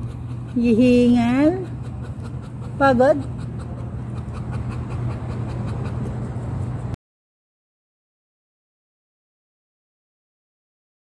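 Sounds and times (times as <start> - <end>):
puppy panting: 0.0 - 7.0
steady low hum: 0.0 - 7.0.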